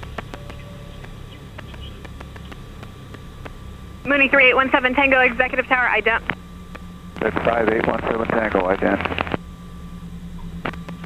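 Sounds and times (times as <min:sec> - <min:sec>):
aircraft piston engines droning: 0:00.0 - 0:11.0
faint thin hum: 0:00.0 - 0:11.0.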